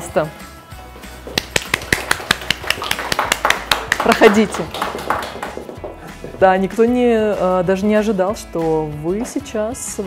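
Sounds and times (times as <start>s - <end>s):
small group clapping: 1.3s - 6.2s.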